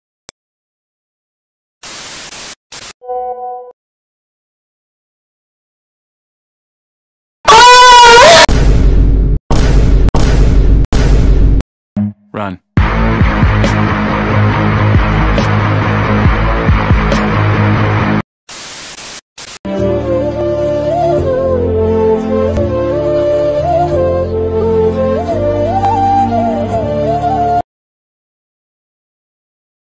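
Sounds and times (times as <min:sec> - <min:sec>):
tv static hiss: 0:01.8 - 0:03.0, 0:18.5 - 0:19.6
heavy music: 0:12.8 - 0:18.2
soft music: 0:19.7 - 0:27.6.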